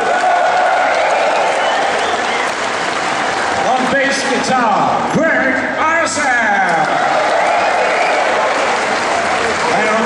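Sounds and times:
audience applauding: 0.0 - 4.2, 6.8 - 10.0.

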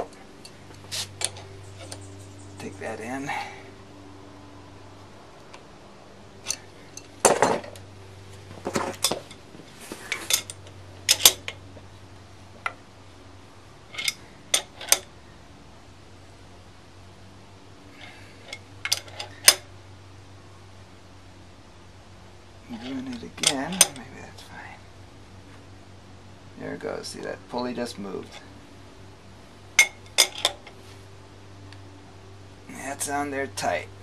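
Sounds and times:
wrenches clinking on metal: 10.1 - 11.5, 13.9 - 15.1, 18.0 - 19.6, 22.8 - 24.1, 29.8 - 30.6.

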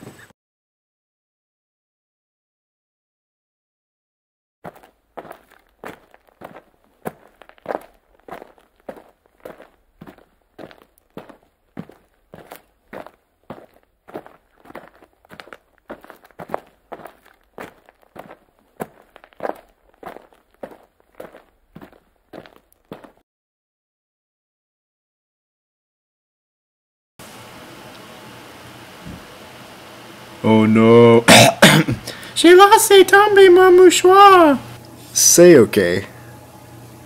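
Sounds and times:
footsteps walking: 4.6 - 23.2.

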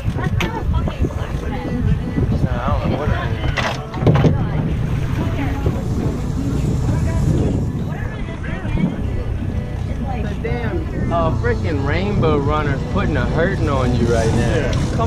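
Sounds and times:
boat engine idling: 0.0 - 15.0
indistinct crew voices: 0.0 - 15.0
wind buffeting microphone: 0.0 - 15.0.

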